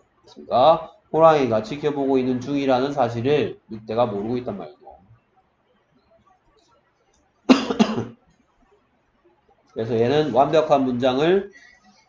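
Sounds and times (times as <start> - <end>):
person coughing: 7.5 - 8.2.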